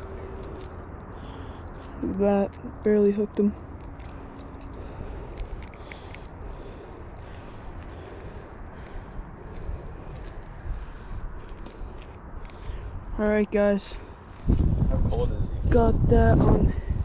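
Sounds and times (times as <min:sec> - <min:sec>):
clicks and rustles of handling: 0:00.0 - 0:09.0
steady low rumble: 0:00.0 - 0:17.0.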